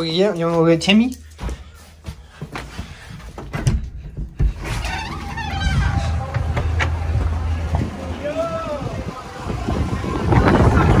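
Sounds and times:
wind rumbling on microphone: 4.8s - 11.0s.

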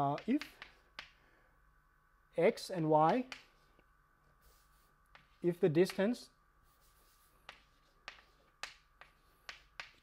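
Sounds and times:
chalk tapping on blackboard: 0.0s - 1.2s, 3.0s - 3.7s, 4.4s - 10.0s.

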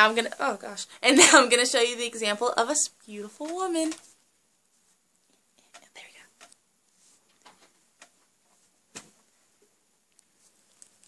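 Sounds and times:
faint whispered word: 5.5s - 6.4s.

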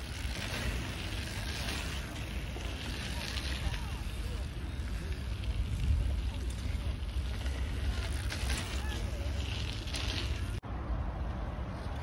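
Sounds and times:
wind buffeting microphone: 0.0s - 9.7s
bike tyres rolling on dirt: 0.0s - 10.7s.

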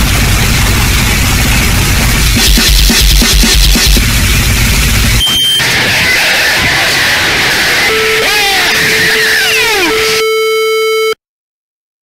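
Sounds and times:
harsh electronic noise music: 0.0s - 10.3s
buzzing electronic tone: 2.2s - 5.9s, 7.8s - 11.2s.

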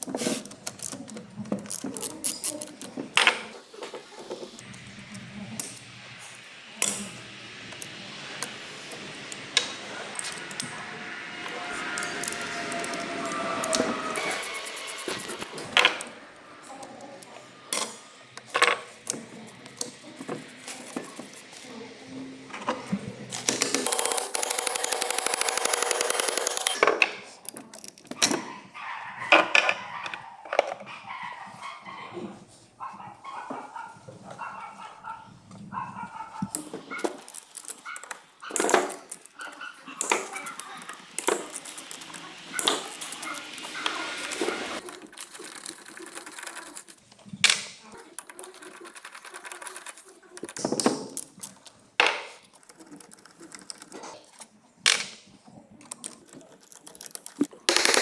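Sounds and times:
ratchet clicking: 23.3s - 26.8s, 36.6s - 46.9s.

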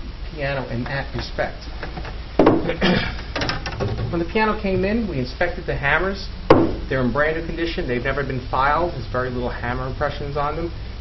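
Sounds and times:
man coughing: 2.7s - 3.3s.

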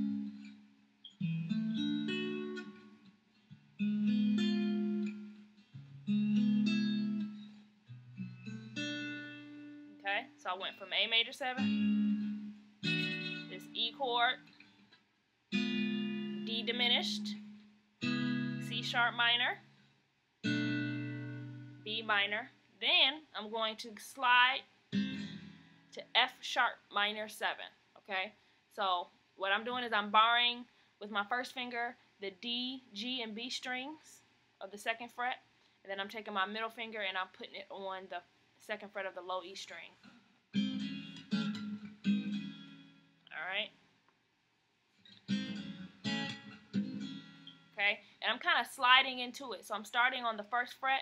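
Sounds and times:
acoustic guitar chord ringing: 0.0s - 3.0s, 3.6s - 10.0s, 11.6s - 14.0s, 15.6s - 19.4s, 20.4s - 21.9s, 25.0s - 25.8s, 40.6s - 43.2s, 45.2s - 47.7s.

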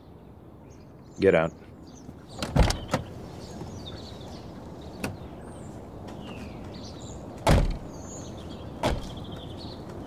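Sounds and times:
car door latch clicks: 7.4s - 7.8s
car door dull thud: 7.4s - 7.9s, 8.8s - 9.2s.

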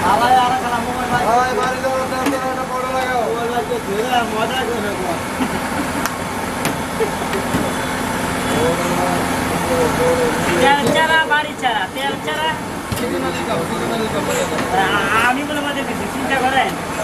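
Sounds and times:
people talking: 0.0s - 17.0s
traffic and engine hum: 0.0s - 17.0s.

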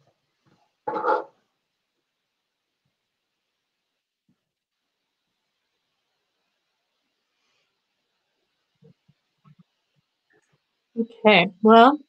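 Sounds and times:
dog bark: 0.9s - 1.3s.

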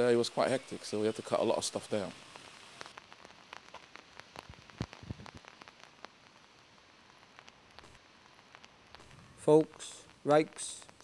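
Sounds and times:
faint rain falling: 0.0s - 11.0s.

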